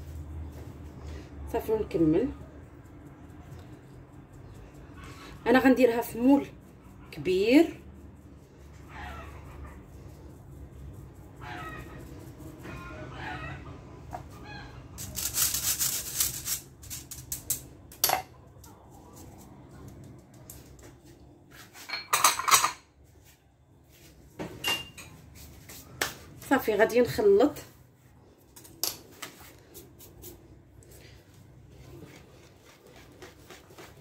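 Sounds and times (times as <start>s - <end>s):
sieve rattling and rustling: 15.0s - 17.2s.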